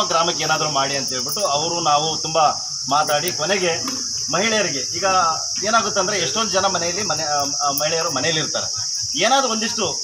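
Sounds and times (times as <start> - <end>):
high-pitched hiss: 0.0 - 10.0.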